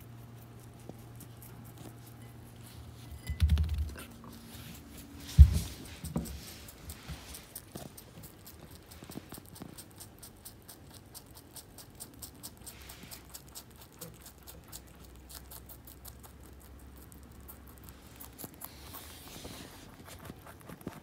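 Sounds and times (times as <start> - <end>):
rabbit chewing crunchy vegetable: 0.0 - 21.0.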